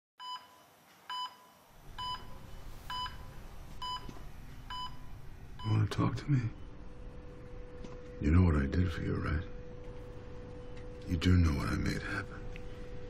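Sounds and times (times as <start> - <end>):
low room hum: 0.2 - 13.0
patient monitor beeping: 0.2 - 13.0.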